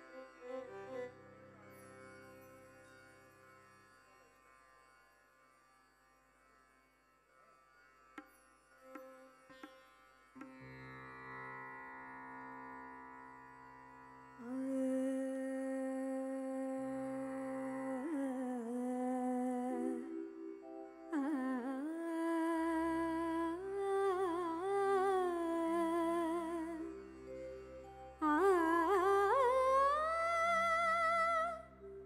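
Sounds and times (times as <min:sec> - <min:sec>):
woman singing: 0:14.4 - 0:27.0, 0:28.2 - 0:31.8.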